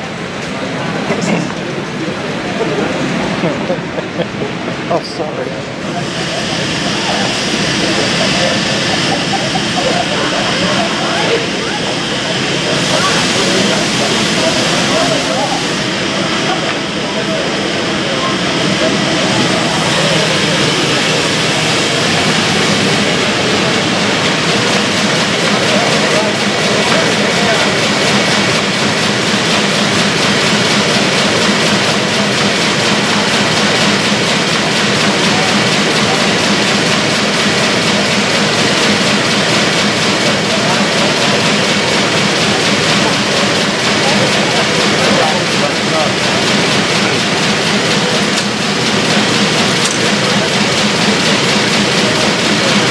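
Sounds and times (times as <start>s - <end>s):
murmur of voices: 0.0s - 52.9s
printing press whirring and clattering: 0.0s - 52.9s.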